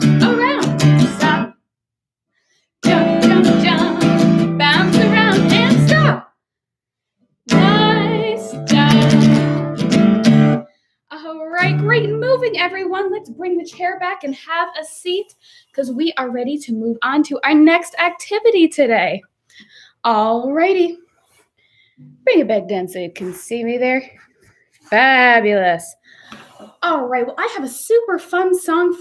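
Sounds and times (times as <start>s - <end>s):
acoustic guitar strumming: 0.0s - 1.5s, 2.8s - 6.2s, 7.5s - 10.7s, 11.5s - 13.4s
woman singing or calling out: 0.0s - 1.5s, 2.8s - 6.3s, 7.5s - 9.4s, 11.1s - 14.6s.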